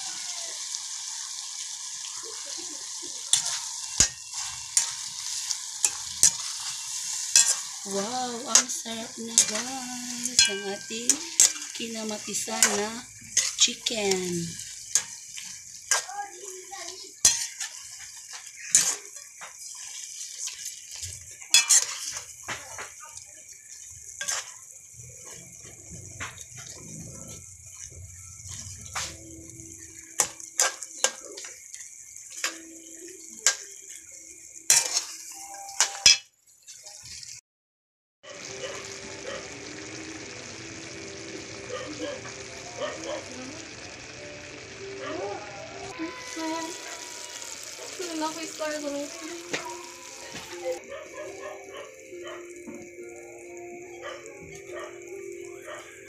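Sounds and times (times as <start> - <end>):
food sizzling: 0.0 - 37.4, 38.2 - 56.0
metal spatula scraping wok: 3.2 - 16.1, 16.7 - 23.0, 23.6 - 31.7, 33.4 - 37.3.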